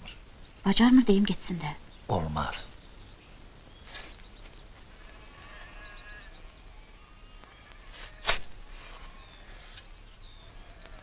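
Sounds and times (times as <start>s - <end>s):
distant animal call: 3.8s - 11.0s.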